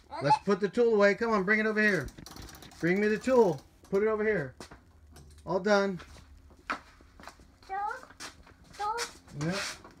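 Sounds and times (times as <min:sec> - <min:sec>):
toddler making high-pitched sounds: 0:00.0 - 0:00.7.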